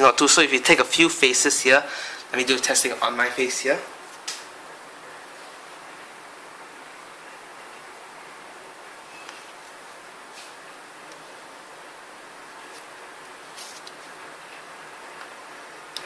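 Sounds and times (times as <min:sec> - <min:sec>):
room noise hiss: 0:00.0 - 0:16.0.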